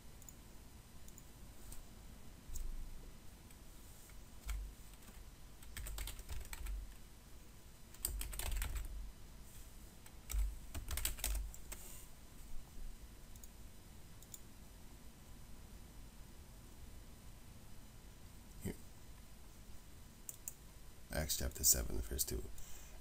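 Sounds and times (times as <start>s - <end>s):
computer keyboard typing: 4.4s - 7.0s, 7.9s - 9.0s, 10.3s - 11.7s.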